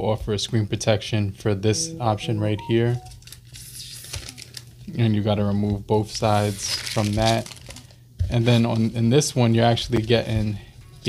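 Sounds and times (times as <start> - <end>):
plastic crinkling: 3.1 - 4.9, 6.3 - 9.0.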